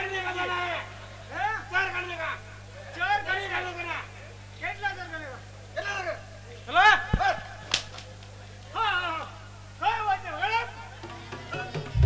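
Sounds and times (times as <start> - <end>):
man shouting through sound system: 0.0 - 7.6, 8.7 - 10.9
sharp crack: 7.2 - 8.3.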